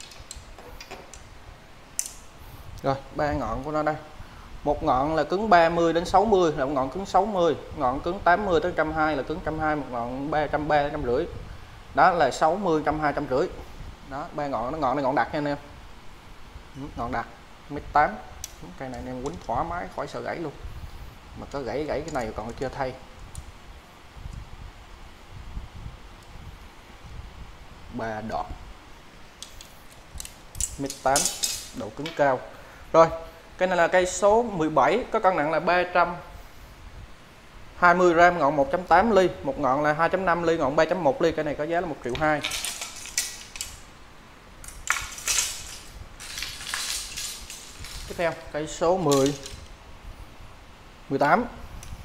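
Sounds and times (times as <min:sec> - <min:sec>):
fishing rods clattering on tile: 0:00.0 - 0:01.2, 0:29.4 - 0:31.8, 0:42.2 - 0:43.8, 0:44.6 - 0:48.4, 0:49.0 - 0:49.7.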